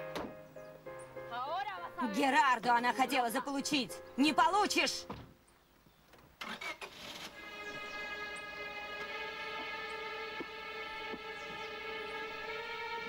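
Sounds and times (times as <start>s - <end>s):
car engine starting: 6.4s - 13.0s
dramatic string music: 7.0s - 13.0s.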